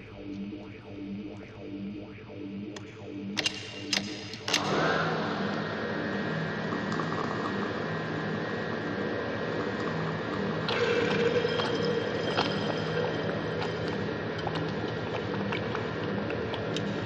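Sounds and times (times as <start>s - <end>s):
machine-like noise texture: 0.0s - 17.0s
steady droning tones: 0.0s - 17.0s
sharp clicks: 2.7s - 4.8s.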